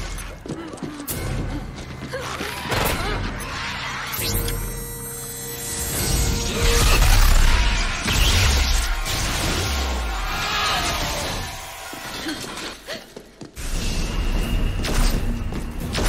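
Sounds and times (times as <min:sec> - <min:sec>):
dramatic film score: 0:00.0 - 0:16.0
crashing and shattering effects: 0:05.8 - 0:12.1.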